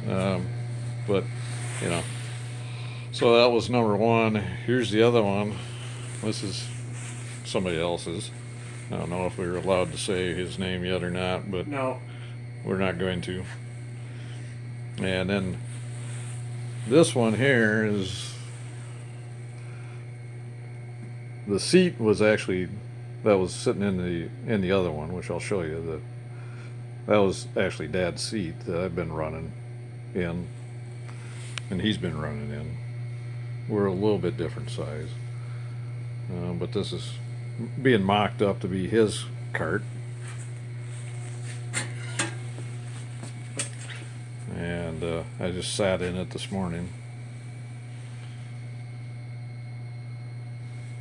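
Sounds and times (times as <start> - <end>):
low electrical hum: 0.0 - 51.0.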